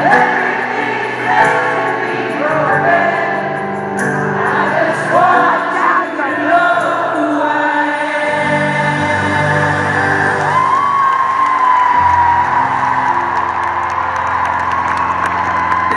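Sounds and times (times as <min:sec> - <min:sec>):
live band music: 0:00.0 - 0:11.0
crowd whooping: 0:10.0 - 0:15.9.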